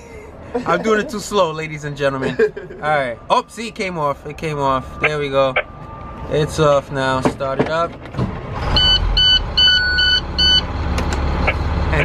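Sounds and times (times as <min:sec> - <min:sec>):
bus engine cranking and idling: 0:07.0 - 0:12.0.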